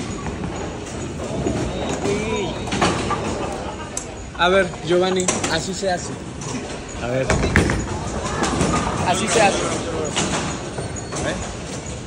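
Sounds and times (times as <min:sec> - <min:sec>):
voices and chatter: 0:00.0 - 0:12.0
bowling ball rolling rumble: 0:06.3 - 0:10.8.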